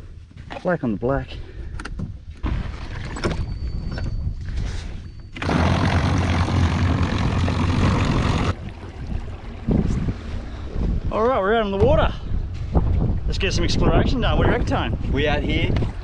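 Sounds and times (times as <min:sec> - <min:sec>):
wind buffeting microphone: 0:02.0 - 0:16.0
electric trolling motor: 0:05.4 - 0:08.6
water wash: 0:05.4 - 0:10.8.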